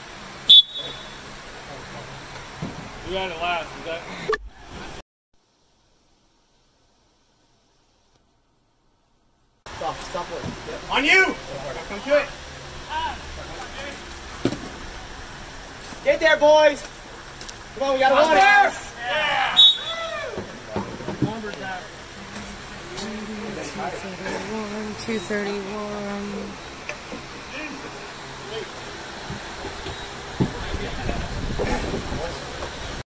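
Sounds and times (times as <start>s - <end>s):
background hiss: 0.0s - 33.0s
referee's whistle blast: 0.5s - 1.3s, 19.5s - 20.0s
voices calling out: 9.7s - 33.0s.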